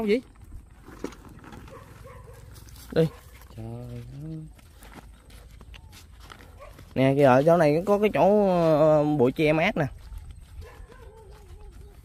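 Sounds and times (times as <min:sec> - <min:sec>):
distant dogs barking: 0:01.6 - 0:03.5, 0:06.5 - 0:07.0, 0:10.6 - 0:12.0.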